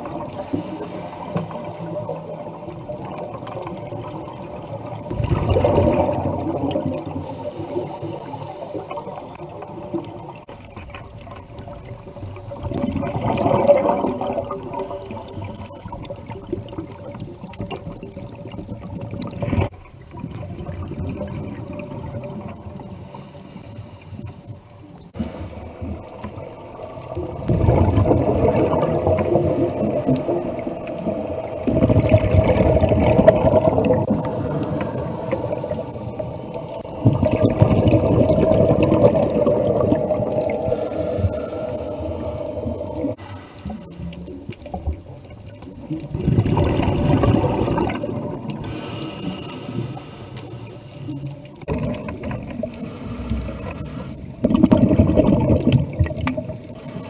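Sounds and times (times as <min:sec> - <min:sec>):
diver breathing through regulator: 0:00.3 - 0:02.2, 0:07.2 - 0:09.5, 0:14.7 - 0:15.9, 0:22.9 - 0:26.0, 0:29.0 - 0:31.9, 0:34.0 - 0:36.2, 0:40.6 - 0:44.2, 0:48.6 - 0:51.4, 0:52.6 - 0:54.3, 0:56.7 - 0:57.0
gurgling bubble bursts: 0:05.0 - 0:07.2, 0:12.6 - 0:14.9, 0:26.0 - 0:30.3, 0:31.0 - 0:34.2, 0:36.2 - 0:40.7, 0:44.6 - 0:48.6, 0:51.6 - 0:52.7, 0:54.3 - 0:56.7.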